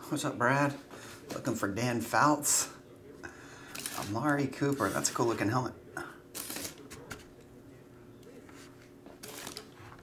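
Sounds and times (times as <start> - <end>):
plastic packaging rustle: 9.2 - 10.0.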